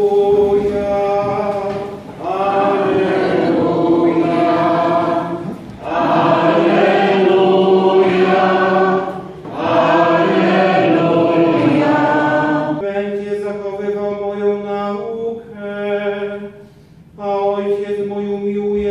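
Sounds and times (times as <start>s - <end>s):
voices singing slow chant: 0.0s - 13.0s.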